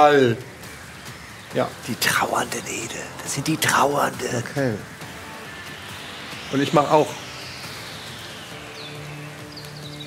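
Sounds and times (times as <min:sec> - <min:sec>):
soft sustained low music tones: 0:00.0 - 0:10.0
steady hiss: 0:00.0 - 0:10.0
faint high chirps: 0:05.1 - 0:10.0.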